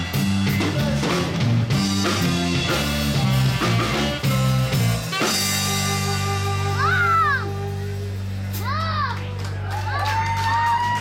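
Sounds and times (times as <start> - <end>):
band holding low chord: 0.0 - 9.8.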